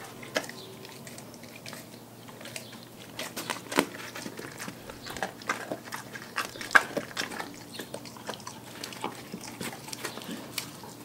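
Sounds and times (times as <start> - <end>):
dog chewing raw fish: 0.0 - 11.0.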